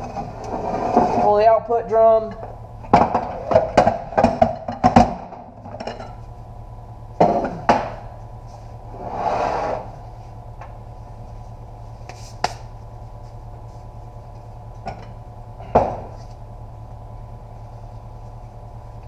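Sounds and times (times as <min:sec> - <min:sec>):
steady hum: 0:00.0 - 0:19.0.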